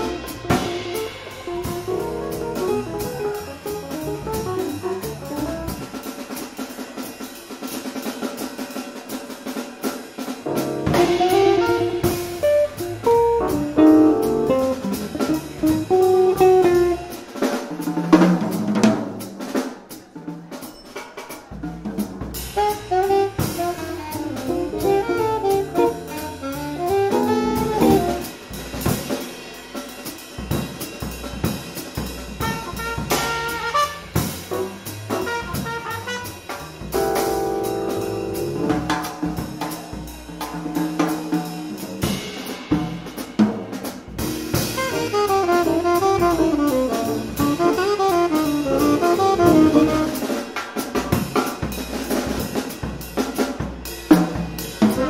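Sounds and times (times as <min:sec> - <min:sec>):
upright bass: 0:00.0 - 0:05.9, 0:10.5 - 0:17.2, 0:22.2 - 0:28.9, 0:32.8 - 0:39.0, 0:44.2 - 0:50.2
swinging drum kit: 0:00.0 - 0:55.0
saxophone melody: 0:10.5 - 0:17.2, 0:22.6 - 0:28.4, 0:44.7 - 0:50.4.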